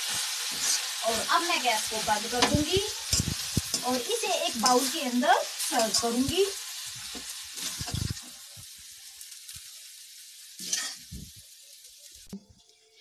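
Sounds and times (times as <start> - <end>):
spatula scraping a pan: 0.0 - 5.0, 7.0 - 8.4, 10.6 - 11.3
greens sizzling in a pan: 0.0 - 13.0.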